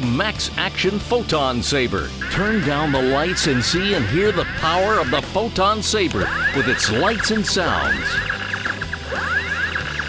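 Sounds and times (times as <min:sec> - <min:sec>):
music: 0:00.0 - 0:10.0
steady electronic hum: 0:02.2 - 0:05.2
toy saber rising sweeping tones: 0:06.3 - 0:10.0.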